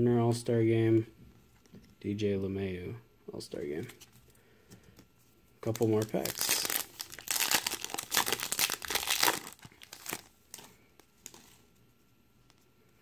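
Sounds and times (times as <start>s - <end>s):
foil wrapper tearing and crinkling: 5.6s - 11.5s.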